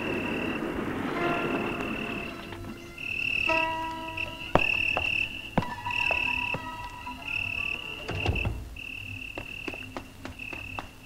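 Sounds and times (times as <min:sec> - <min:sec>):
insect chirring: 0:00.0 - 0:11.0.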